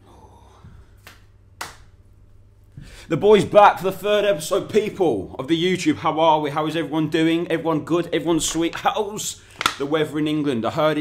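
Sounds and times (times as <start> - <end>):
faint low hum: 0.0 - 11.0
hand clap: 1.0 - 2.0, 9.6 - 9.8.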